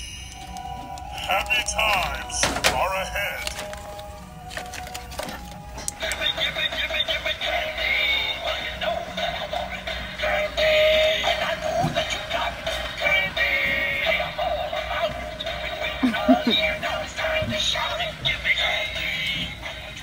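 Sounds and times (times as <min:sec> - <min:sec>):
tinny song from small speaker: 0:00.3 - 0:20.0.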